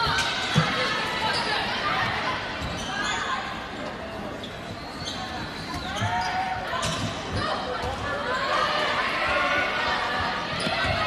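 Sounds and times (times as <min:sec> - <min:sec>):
voices echoing in gym: 0:00.0 - 0:11.0
sneakers squeaking on hardwood: 0:04.4 - 0:07.6.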